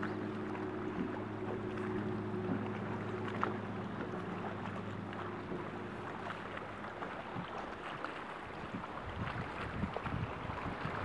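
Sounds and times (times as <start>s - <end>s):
boat motor humming: 0.0s - 11.0s
wind noise: 8.6s - 11.0s.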